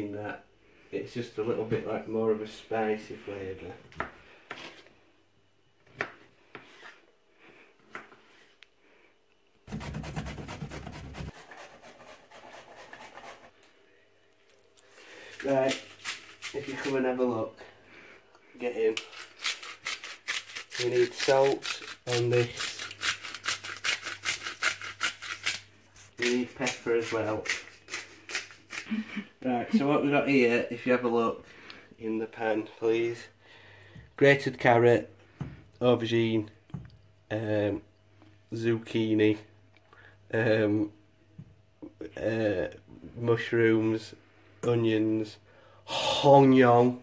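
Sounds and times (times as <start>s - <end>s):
seasoning grinder rasping: 18.9s - 29.0s
carrot grated on metal grater: 19.0s - 25.6s.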